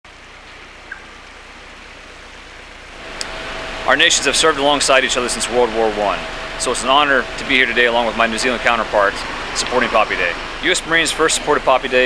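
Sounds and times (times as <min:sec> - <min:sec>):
steady outdoor hiss: 0:00.1 - 0:12.0.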